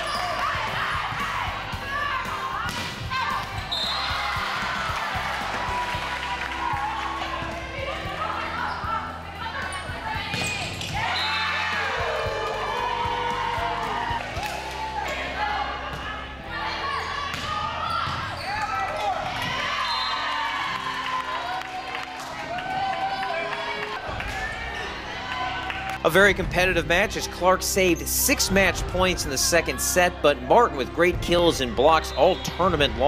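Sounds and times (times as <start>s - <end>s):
people shouting and cheering: 0.0s - 33.0s.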